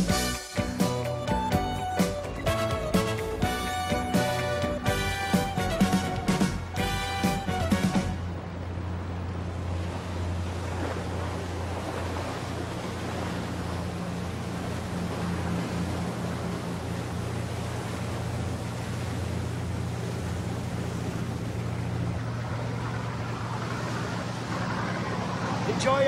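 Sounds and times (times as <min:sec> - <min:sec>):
boat engine running: 0:00.0 - 0:26.0
water rushing past hull: 0:00.0 - 0:26.0.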